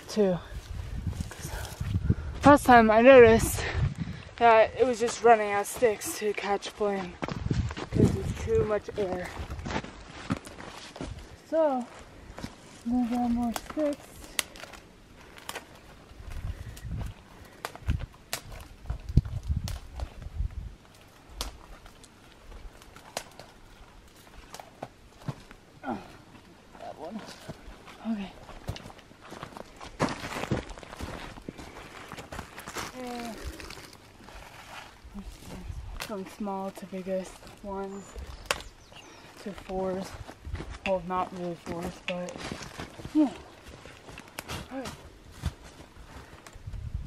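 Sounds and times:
footsteps on snow: 4.4s - 13.5s, 27.1s - 35.8s
dry twigs snapping: 12.4s - 25.6s, 32.1s - 34.2s, 35.9s - 36.3s, 37.4s - 39.8s, 44.0s - 44.8s.

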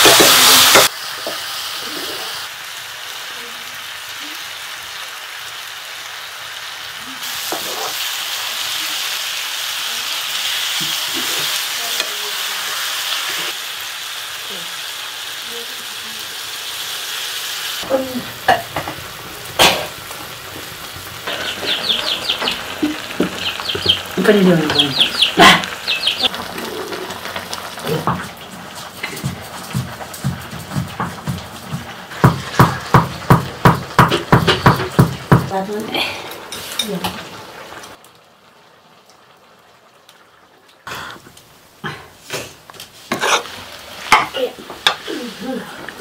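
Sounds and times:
utensils knocking on pan: 0.0s - 1.4s, 18.5s - 19.0s, 19.6s - 26.4s, 27.9s - 35.6s, 44.1s - 45.0s
food sizzling in a pan: 0.0s - 46.0s.

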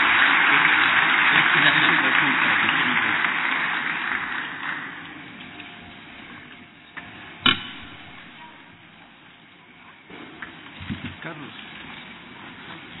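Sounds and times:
crowd noise: 0.0s - 13.0s
sharp thump: 7.4s - 8.1s.

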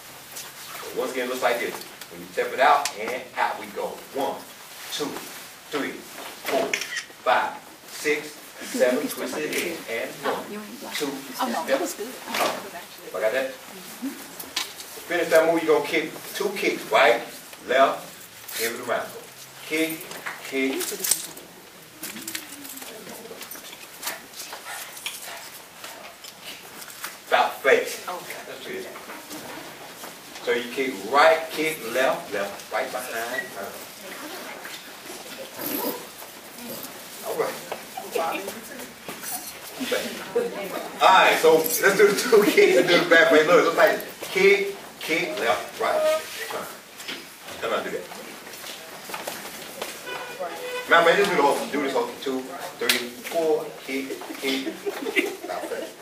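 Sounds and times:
man speaking: 0.8s - 13.6s, 15.0s - 21.0s, 27.3s - 28.9s, 30.4s - 33.9s, 37.2s - 38.5s, 41.0s - 46.8s, 50.1s - 54.8s
shoes tapping on tiled floor: 48.1s - 50.3s.

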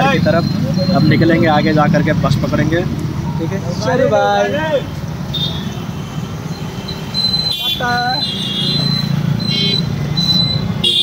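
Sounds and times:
auto-rickshaw engine hum: 0.0s - 11.0s.

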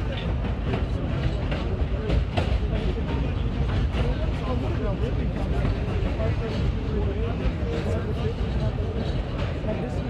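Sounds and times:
passengers talking: 0.0s - 10.0s
subway car rumbling: 0.0s - 10.0s
wheels clacking over rail joints: 0.0s - 10.0s.

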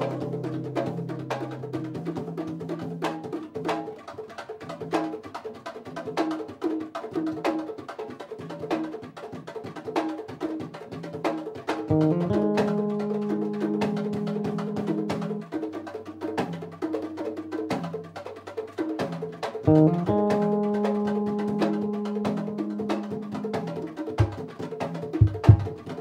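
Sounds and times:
congas playing a groove: 0.0s - 26.0s
electric bass low notes: 11.9s - 15.4s, 19.7s - 23.7s.

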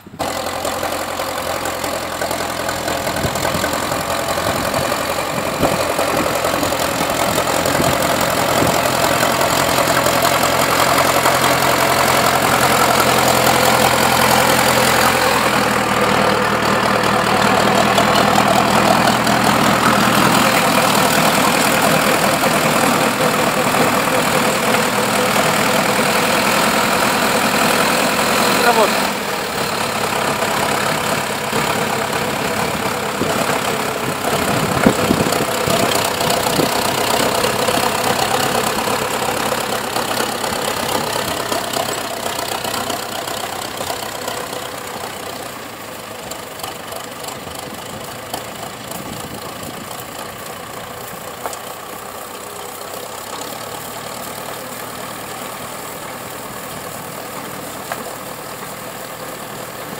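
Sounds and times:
tractor diesel engine: 0.0s - 59.9s
snowblower throwing snow: 0.1s - 59.9s.

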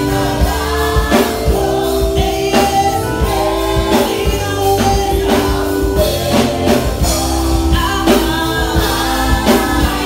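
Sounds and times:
drum kit and bass beat: 0.0s - 10.0s
group singing gospel song: 0.0s - 10.0s.

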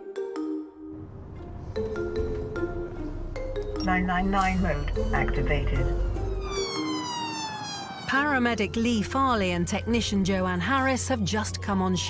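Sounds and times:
ambulance siren wailing: 1.0s - 12.0s.

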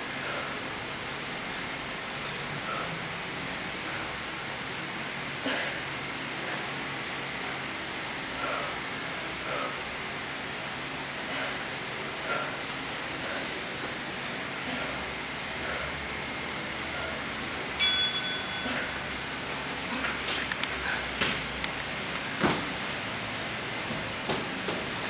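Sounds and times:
bell-like timer chime: 17.8s - 18.9s.

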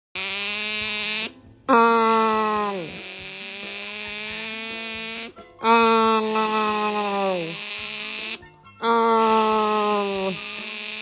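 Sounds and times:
otter snoring: 1.8s - 4.7s, 5.7s - 7.8s, 8.9s - 10.7s.

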